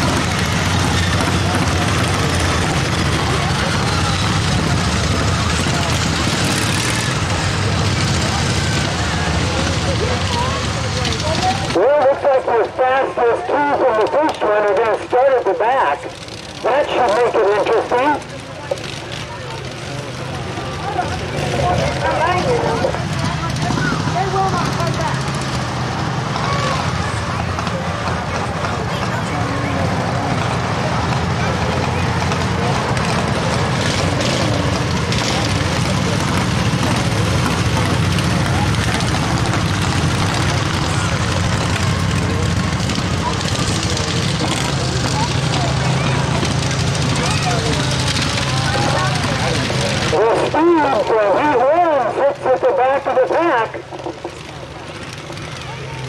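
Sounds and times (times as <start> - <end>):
racing lawn mower engines: 0.0 - 56.0.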